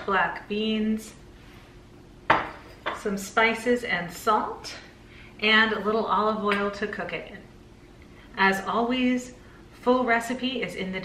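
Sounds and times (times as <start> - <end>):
glass set down on stone: 2.3 - 3.0.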